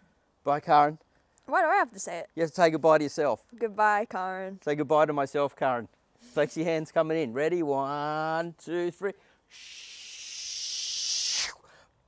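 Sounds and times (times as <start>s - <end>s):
whooshing hiss: 9.5s - 11.7s.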